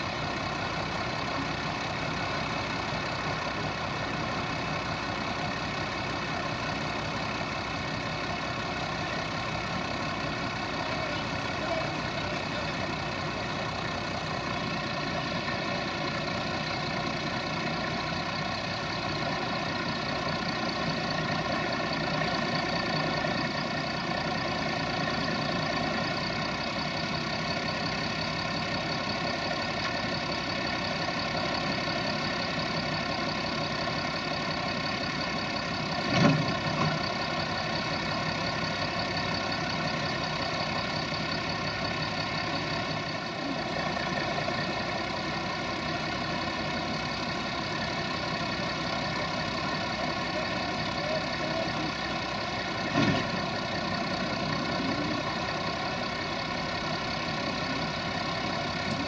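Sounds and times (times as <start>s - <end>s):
tractor engine and thresher hum: 0.0s - 59.0s.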